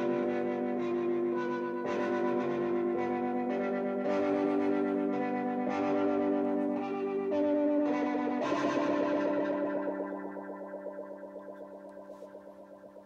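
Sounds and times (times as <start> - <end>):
electric guitar chords with vibrato: 0.0 - 12.9.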